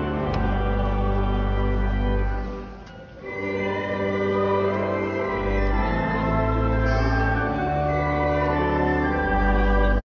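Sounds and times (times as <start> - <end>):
choir singing: 0.0 - 10.0
church organ chords: 0.0 - 10.0.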